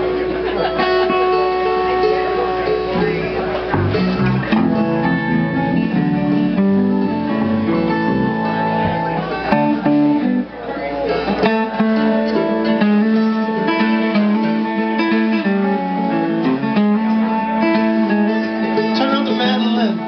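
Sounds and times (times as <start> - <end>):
drums: 0.0 - 20.0
second guitar: 0.0 - 20.0
strummed acoustic guitar: 0.0 - 20.0.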